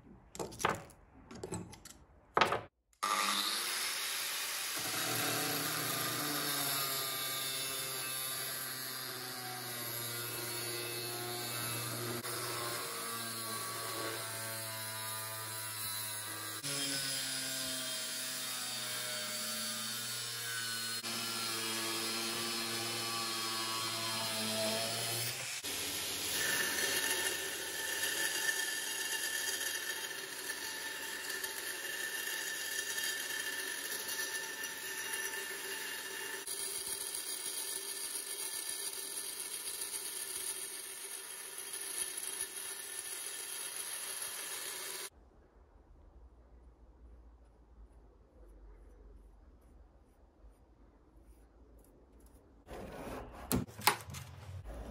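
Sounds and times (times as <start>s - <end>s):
angle grinder cutting steel: 3.0s - 45.1s
belt grinder grinding steel: 3.1s - 45.1s.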